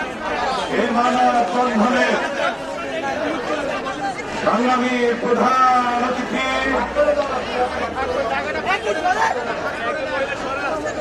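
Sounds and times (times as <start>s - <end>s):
crowd chattering: 0.0s - 11.0s
man speaking: 0.6s - 2.5s, 4.3s - 8.2s.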